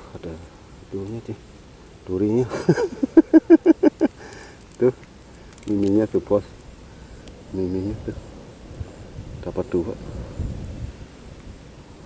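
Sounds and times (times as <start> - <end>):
wind buffeting microphone: 6.1 - 12.0.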